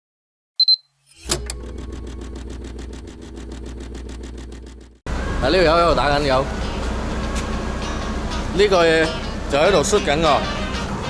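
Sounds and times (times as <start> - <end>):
short high beep: 0.6 - 0.9
low hum: 1.2 - 8.5.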